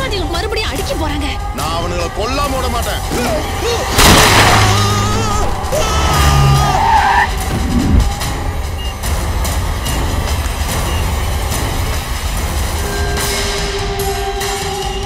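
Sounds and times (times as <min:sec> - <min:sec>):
background music: 0:00.0 - 0:15.0
car passing rumble: 0:03.1 - 0:12.8.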